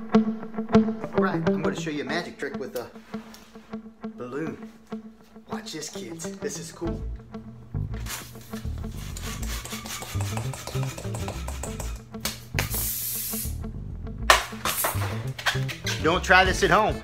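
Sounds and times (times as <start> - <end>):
background music: 0.0 - 17.0
rubbery rubbing: 8.0 - 12.0
hand pump inflating balloon: 8.8 - 12.0
hissing rush of air: 12.7 - 13.6.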